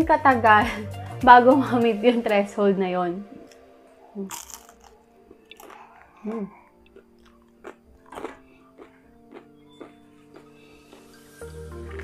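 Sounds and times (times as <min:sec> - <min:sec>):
wet chewing with crunchy bites: 0:04.2 - 0:12.0.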